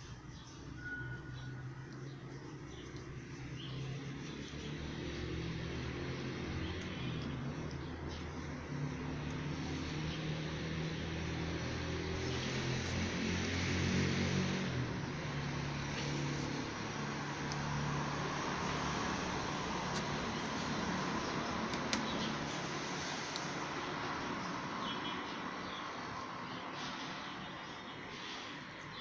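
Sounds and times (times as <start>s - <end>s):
vehicle engine running: 1.6s - 24.6s.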